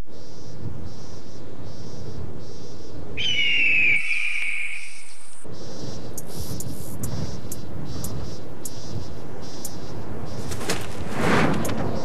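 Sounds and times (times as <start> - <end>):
bird of prey crying: 1.7 - 10.0.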